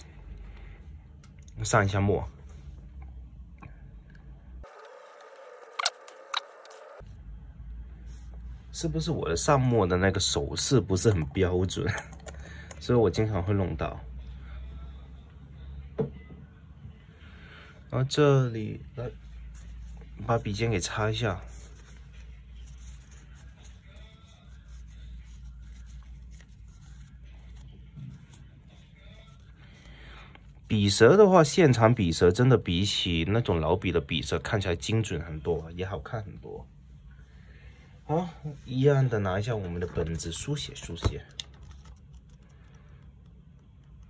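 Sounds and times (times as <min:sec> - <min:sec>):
tissue rustling on pen nib: 0:19.2 - 0:30.6
steady low hum: 0:35.1 - 0:44.0
faint handling noise: 0:38.4 - 0:44.0.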